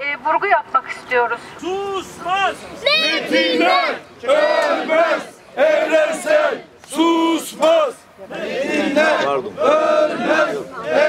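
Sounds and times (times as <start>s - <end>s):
child shouting: 2.8s - 4.6s.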